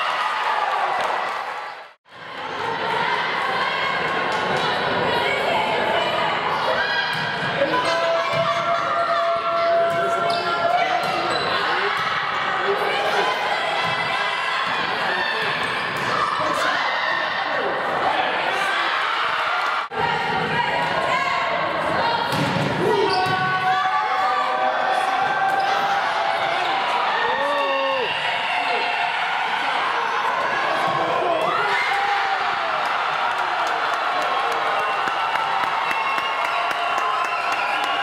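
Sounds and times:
voices echoing in gym: 2.1 - 35.0.

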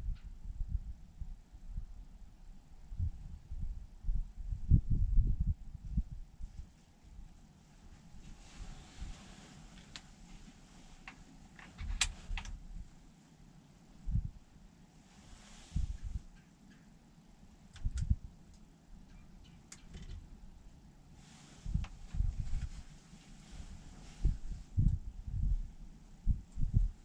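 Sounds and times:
soft rustles: 6.4 - 13.4, 15.0 - 16.9, 21.2 - 25.0
low thumps and bumps: 21.7 - 22.8.

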